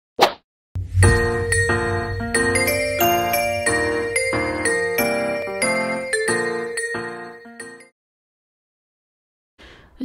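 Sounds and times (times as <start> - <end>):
intro music jingle ringing notes: 0.8 - 7.8.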